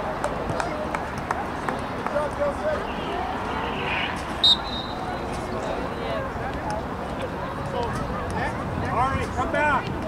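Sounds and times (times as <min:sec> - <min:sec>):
voices calling out: 0:01.5 - 0:06.4.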